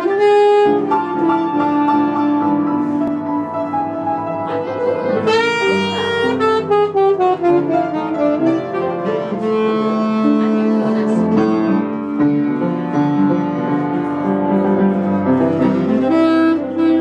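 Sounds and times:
tenor saxophone: 0.0 - 3.8, 4.4 - 11.9, 15.5 - 17.0
upright piano: 0.0 - 17.0.

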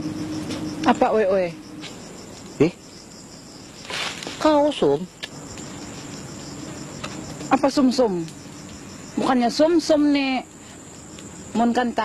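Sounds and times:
crickets chirping: 0.0 - 12.0
voices: 0.5 - 12.0.

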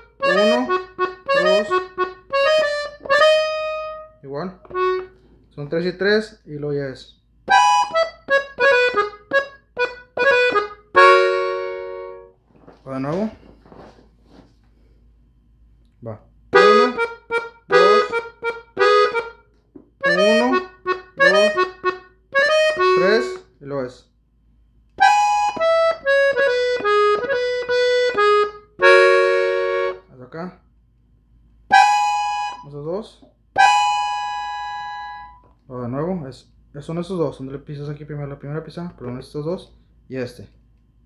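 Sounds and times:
button accordion playing: 0.0 - 5.3, 7.5 - 12.3, 16.5 - 19.4, 20.0 - 23.4, 25.0 - 30.1, 31.7 - 32.7, 33.6 - 35.5.

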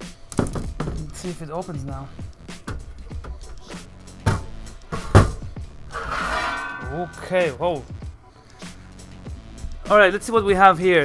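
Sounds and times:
metal scraping and rattling: 5.8 - 7.5
metal lid clunk: 5.9 - 7.3.

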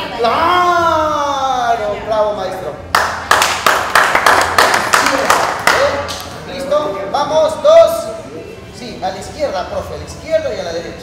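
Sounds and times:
rhythmic hand clapping: 2.9 - 6.4.

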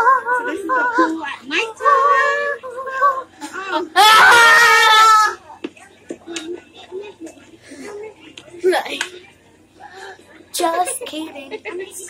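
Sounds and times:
faint broken-up voices: 0.0 - 12.0.

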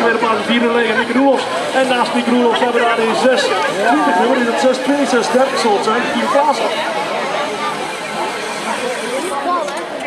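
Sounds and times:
crowd chatter: 0.0 - 10.0.

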